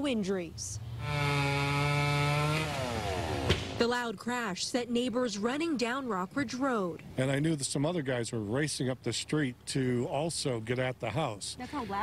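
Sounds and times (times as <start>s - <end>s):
chainsaw at full throttle: 1.0s - 3.8s
sharp knock: 3.4s - 3.8s.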